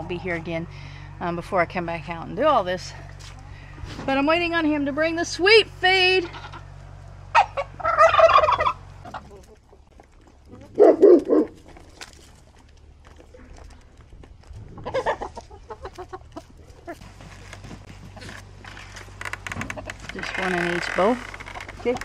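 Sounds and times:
turkey gobbling: 0:07.3 - 0:09.9, 0:14.7 - 0:17.2.

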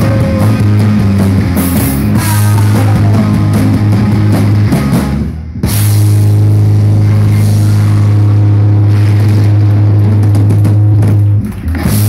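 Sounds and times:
amplified bass and guitar note: 0:00.0 - 0:12.0.

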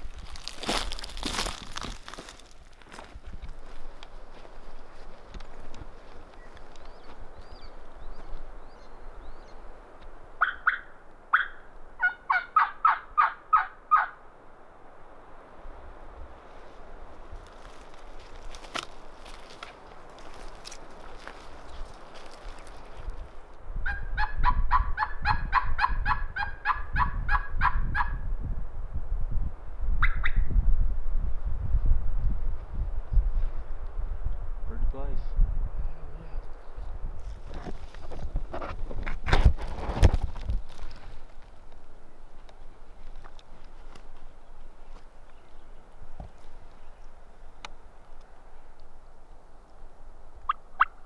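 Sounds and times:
footsteps on dry forest litter: 0:00.0 - 0:08.8, 0:16.4 - 0:23.5, 0:37.2 - 0:47.1
turkey yelping: 0:10.4 - 0:14.2, 0:23.9 - 0:28.2.

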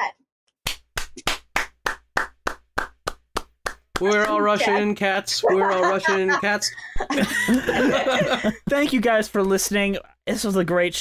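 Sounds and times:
hands clapping a steady beat: 0:00.6 - 0:04.9.

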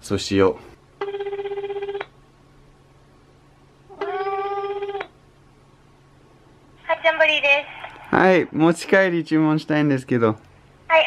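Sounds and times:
telephone ringback tone: 0:01.0 - 0:02.0.

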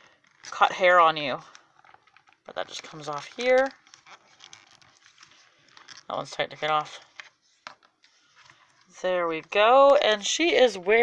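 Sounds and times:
rustling and scratching of fabric: 0:00.1 - 0:11.0.

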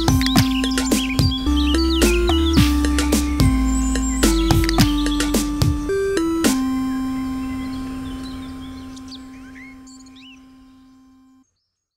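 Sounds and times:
bird-like chirps: 0:00.0 - 0:11.4
held electronic music note: 0:00.0 - 0:11.4.

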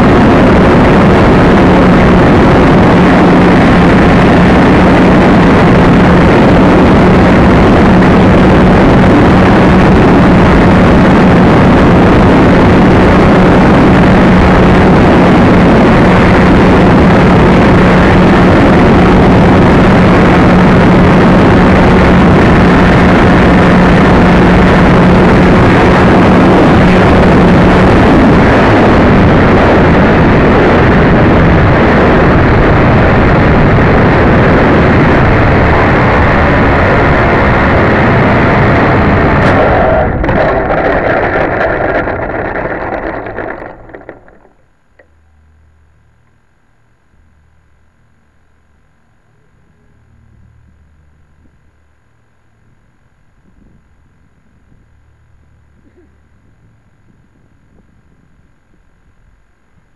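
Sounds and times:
steady hum: 0:00.0 - 0:59.9
model airplane motor and airflow: 0:38.8 - 0:45.8.

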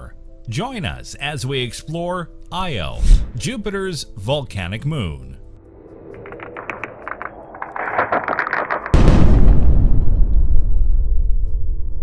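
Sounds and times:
rising rush of noise: 0:05.6 - 0:09.0
sharp crackling clicks: 0:06.1 - 0:09.2.

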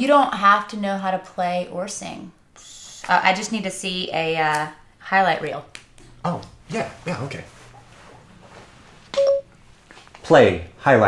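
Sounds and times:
short electronic beep: 0:09.2 - 0:09.5.

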